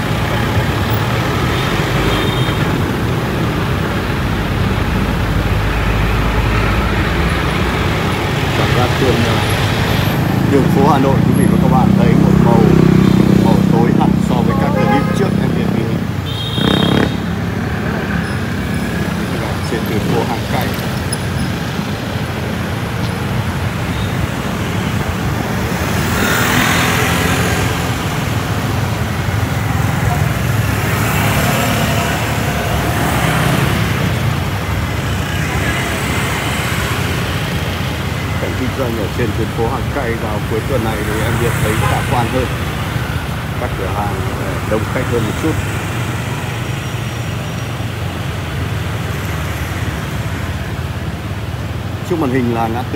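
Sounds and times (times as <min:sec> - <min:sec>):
motorbikes and cars passing: 0:00.0 - 0:52.9
people's voices: 0:06.0 - 0:17.1, 0:19.2 - 0:21.2, 0:38.3 - 0:42.7, 0:43.5 - 0:45.7, 0:52.1 - 0:52.9
high-pitched tone: 0:14.2 - 0:15.6.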